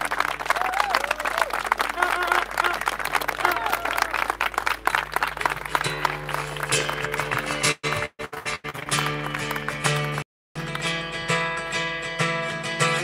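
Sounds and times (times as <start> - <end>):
crowd clapping: 0.0 - 11.0
acoustic guitar strumming chords: 5.8 - 13.0.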